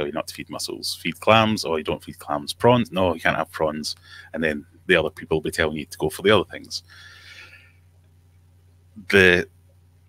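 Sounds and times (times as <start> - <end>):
faint low electrical hum: 0.0 - 10.0
man exhaling: 6.9 - 7.7.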